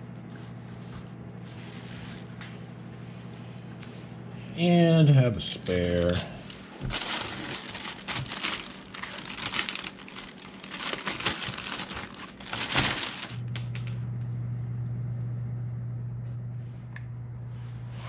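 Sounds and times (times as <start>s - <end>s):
steady low hum: 0.0s - 18.0s
plastic bag crinkling: 5.7s - 13.9s.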